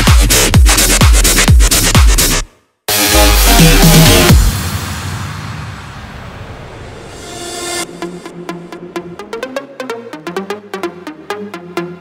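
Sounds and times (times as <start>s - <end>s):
electronic dance music: 0.0s - 12.0s
noise sweep: 2.2s - 9.4s.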